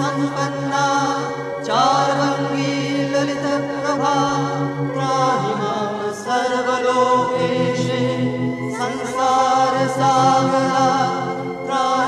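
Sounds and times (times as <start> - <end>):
low drone: 0.0 - 12.0
person chanting long note: 0.0 - 12.0.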